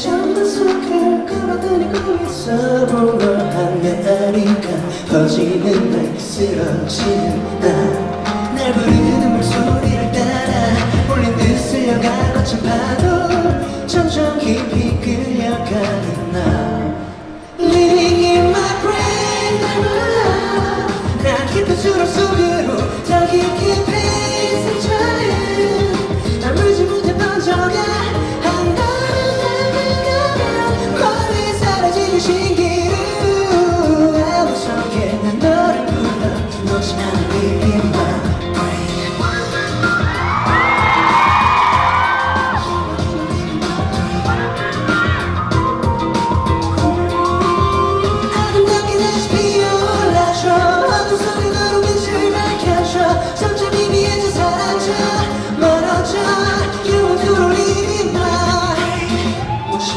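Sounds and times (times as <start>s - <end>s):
man singing into a microphone: 0.0s - 45.8s, 46.7s - 59.9s
pop backing track with heavy beat: 0.0s - 59.9s.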